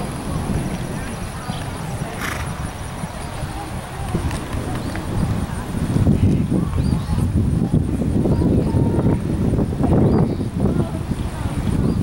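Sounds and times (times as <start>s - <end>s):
horse hoofbeats on sand: 0.0s - 5.3s
faint voices: 0.0s - 12.0s.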